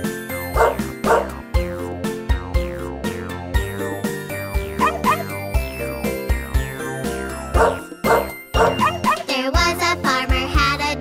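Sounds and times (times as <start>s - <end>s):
bouncy children's music: 0.0s - 11.0s
dog barks: 0.6s - 1.4s, 7.6s - 9.0s.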